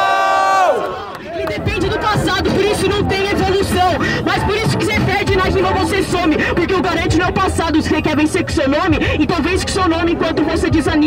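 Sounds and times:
crowd noise: 0:00.0 - 0:11.0
person rapping into a microphone: 0:01.4 - 0:11.0.

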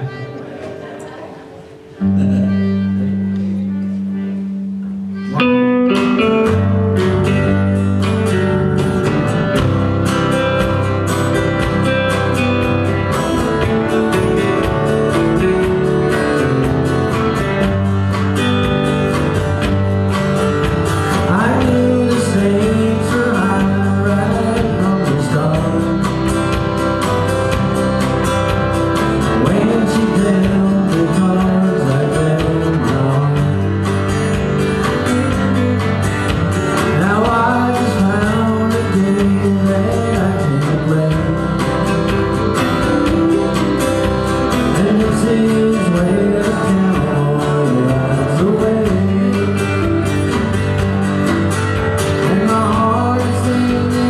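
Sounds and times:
country band playing: 0:00.0 - 0:54.0.

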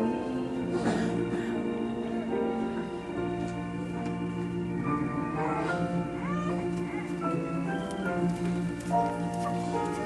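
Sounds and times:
organ and piano playing hymn: 0:00.0 - 0:10.0.

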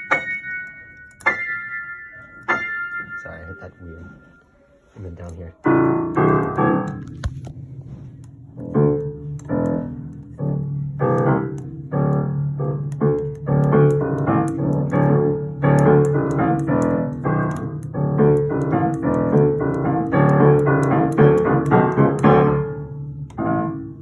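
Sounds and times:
acoustic piano playing: 0:00.0 - 0:24.0.

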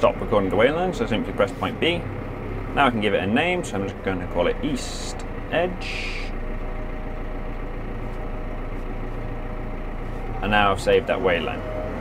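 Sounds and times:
faint steady whine: 0:00.0 - 0:11.5
tractor engine drone: 0:00.0 - 0:12.0.

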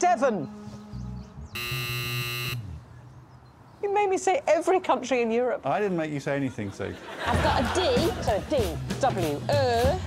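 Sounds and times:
harsh electronic buzzer: 0:01.6 - 0:02.7.

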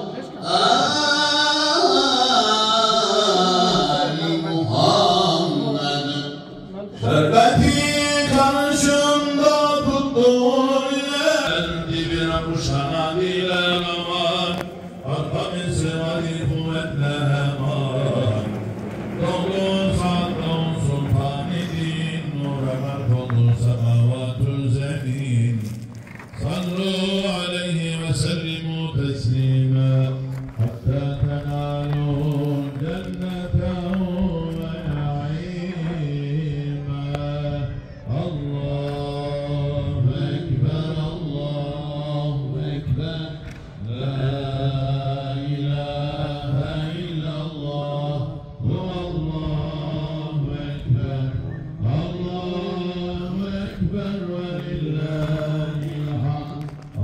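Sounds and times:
man chanting religious recitation: 0:00.0 - 0:57.0.

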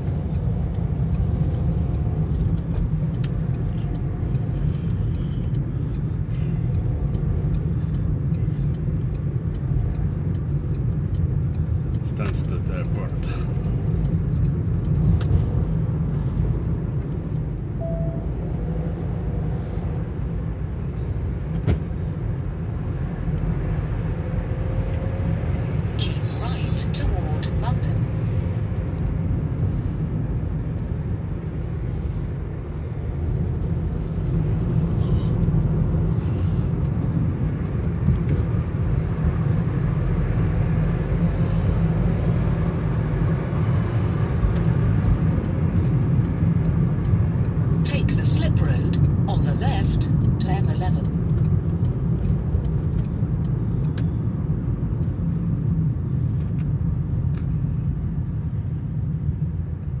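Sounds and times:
car road and engine rumble: 0:00.0 - 1:00.0.

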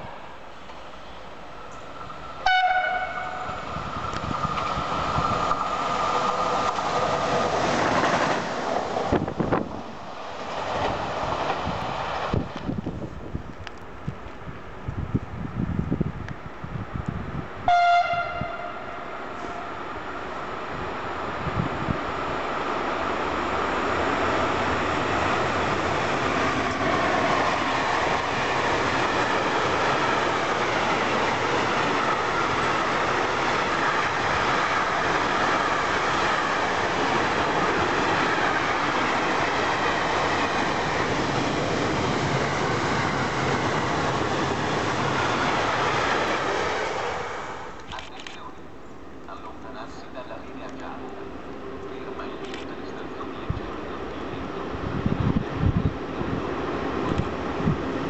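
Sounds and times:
freight train passing: 0:00.0 - 0:58.0
train horn blast: 0:02.4 - 0:03.6, 0:17.7 - 0:19.7.

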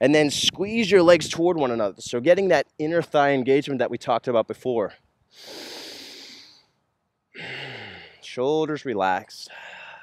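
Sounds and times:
man breathing: 0:05.3 - 0:08.3, 0:09.5 - 0:10.0.

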